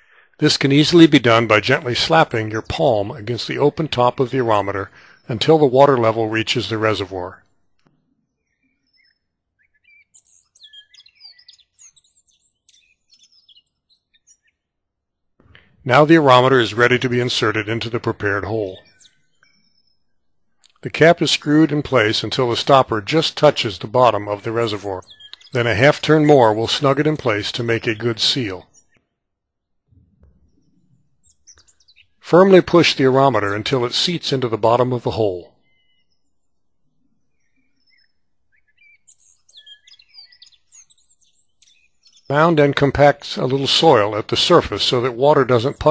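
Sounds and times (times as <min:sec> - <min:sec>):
faint birdsong chirps and whistles: 0:00.0 - 0:45.9.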